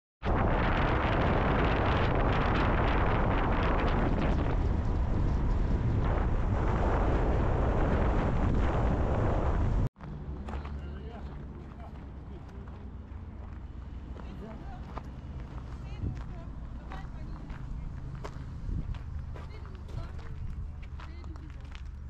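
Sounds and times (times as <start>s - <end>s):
wind buffeting microphone: 0.2s - 22.0s.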